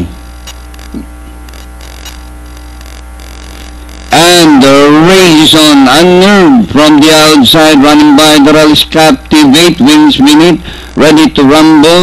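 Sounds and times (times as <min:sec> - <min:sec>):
electrical mains hum: 0:00.0 - 0:12.0
faint static: 0:00.0 - 0:12.0.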